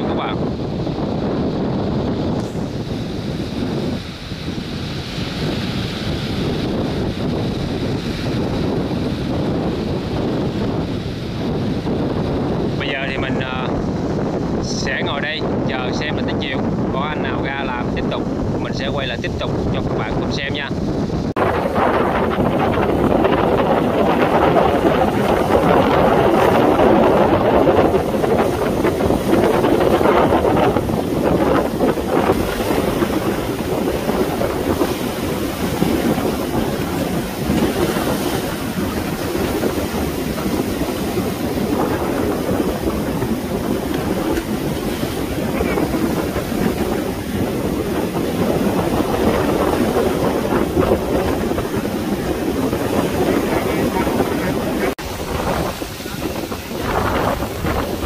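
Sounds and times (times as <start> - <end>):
sea waves breaking: 0.0 - 58.0
wind buffeting microphone: 0.0 - 58.0.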